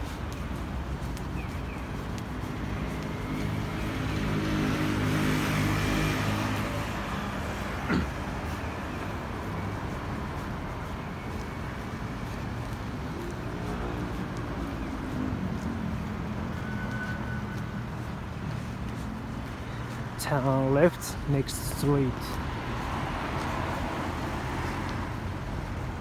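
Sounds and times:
steady traffic hum: 0.0s - 26.0s
vehicle passing close by: 3.2s - 8.3s.

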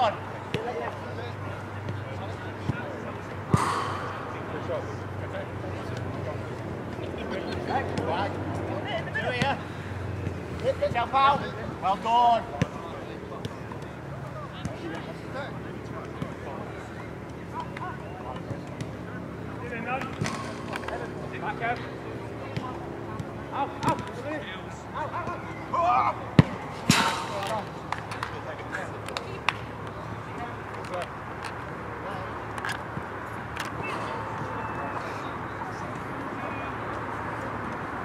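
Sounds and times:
players calling and shouting: 0.0s - 38.0s
football being kicked: 26.4s - 27.4s.

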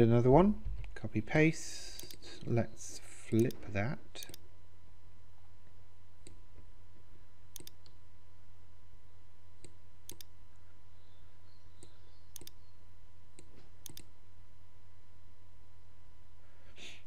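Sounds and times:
steady low hum: 0.0s - 17.0s
computer mouse buttons clicking: 2.0s - 2.5s, 3.4s - 3.6s, 7.6s - 8.0s, 9.6s - 10.3s, 11.8s - 12.6s, 13.4s - 14.1s.

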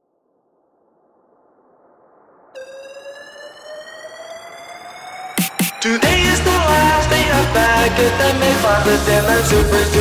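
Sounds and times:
noise sweep: 0.0s - 10.0s
synth tone gliding upward: 0.9s - 7.4s.

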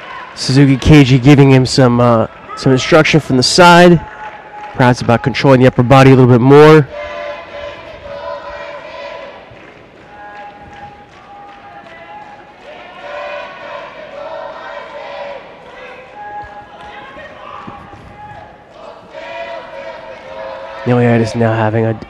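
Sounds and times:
crowd shouting encouragement: 0.0s - 22.0s.

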